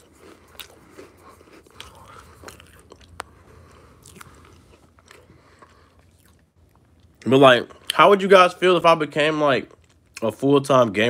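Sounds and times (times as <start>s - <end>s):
faint chewing: 0.0s - 8.0s, 9.2s - 10.4s.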